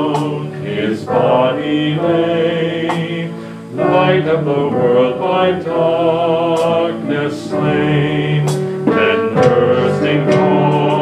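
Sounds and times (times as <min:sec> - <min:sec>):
instrumental accompaniment: 0:00.0 - 0:11.0
person singing a hymn: 0:00.0 - 0:11.0.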